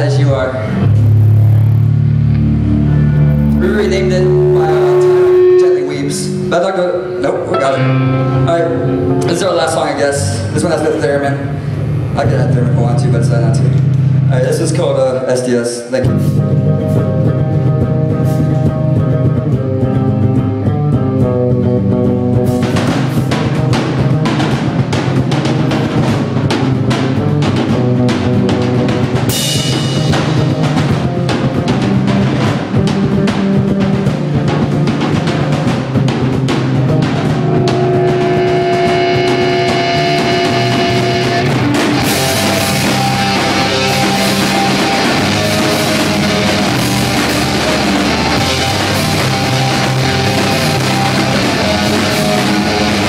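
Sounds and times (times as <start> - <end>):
live rock band playing: 0.0 - 15.0, 16.0 - 53.0
drum kit: 0.0 - 15.2, 16.0 - 53.0.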